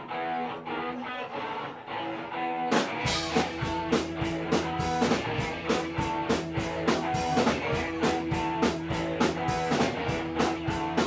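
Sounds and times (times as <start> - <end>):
electric guitars picking riff: 0.0 - 11.0.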